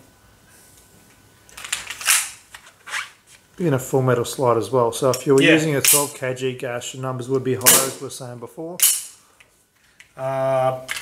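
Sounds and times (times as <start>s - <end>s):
pistol slide metallic clicks: 8.8s - 9.2s.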